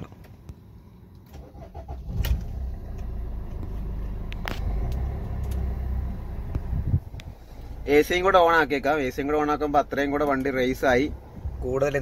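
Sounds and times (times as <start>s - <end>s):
diesel engine starting and idling: 1.0s - 12.0s.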